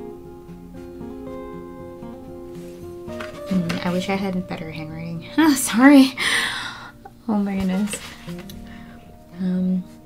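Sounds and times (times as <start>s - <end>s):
soft background music: 0.0s - 10.0s
woman's voice: 3.5s - 6.4s, 7.3s - 8.2s, 9.4s - 10.0s.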